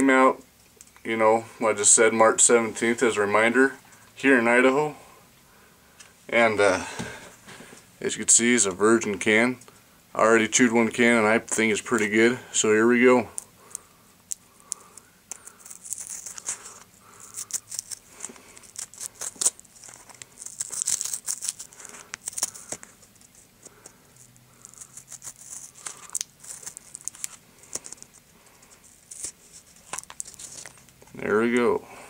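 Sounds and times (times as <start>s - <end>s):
seal tearing and crinkling: 13.4s - 30.9s.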